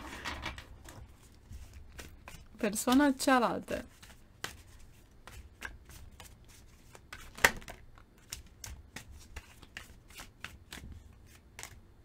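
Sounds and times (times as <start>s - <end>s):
cards being shuffled: 0.0s - 3.1s, 3.8s - 11.8s.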